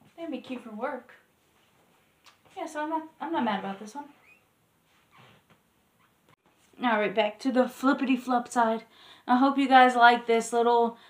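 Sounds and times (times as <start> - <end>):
soft breath: 8.9 - 9.3.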